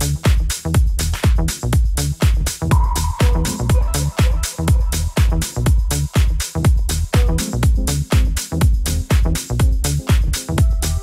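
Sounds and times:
hi-hat strokes: 0.0s - 11.0s
kick drum beat: 0.0s - 11.0s
sustained synth chords: 2.7s - 6.2s.

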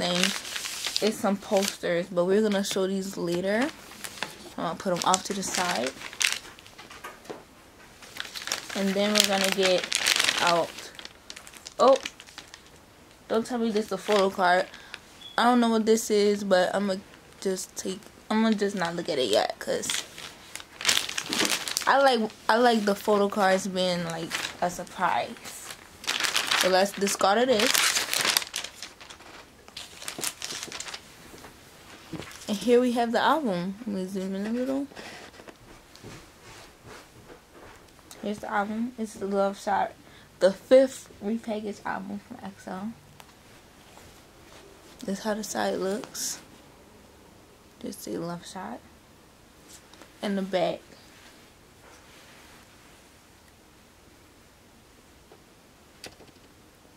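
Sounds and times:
plastic bag rustling: 0.0s - 7.3s, 7.9s - 15.4s, 17.0s - 32.7s.

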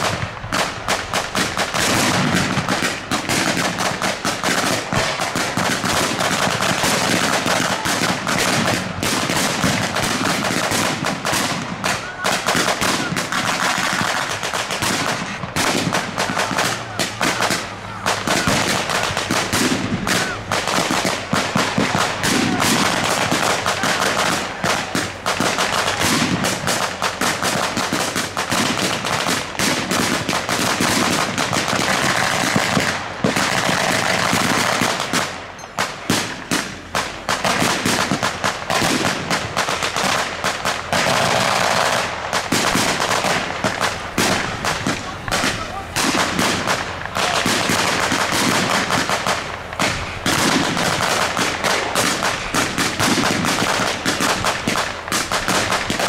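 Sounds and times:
rifle and machine gun fire: 0.0s - 56.0s.

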